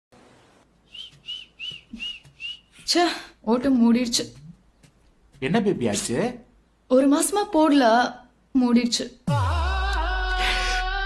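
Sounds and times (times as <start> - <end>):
person whistling short notes: 0.9 - 2.9.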